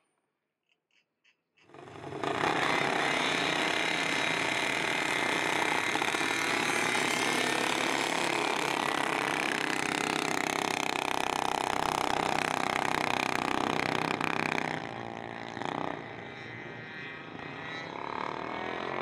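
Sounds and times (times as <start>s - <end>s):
small engines revving: 1.7s - 19.0s.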